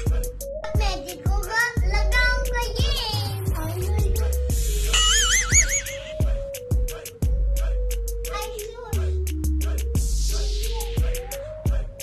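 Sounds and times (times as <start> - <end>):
music with bass and kick beat: 0.0 - 12.0
person singing: 2.8 - 8.3, 8.9 - 12.0.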